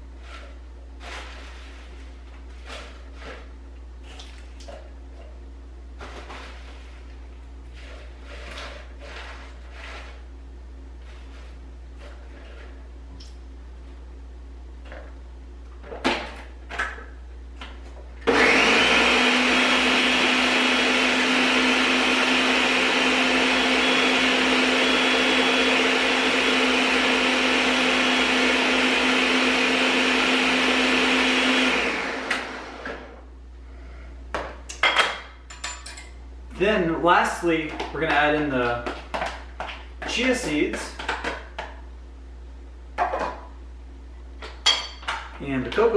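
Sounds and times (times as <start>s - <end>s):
countertop blender running: 7.8s - 10.2s, 18.2s - 33.3s.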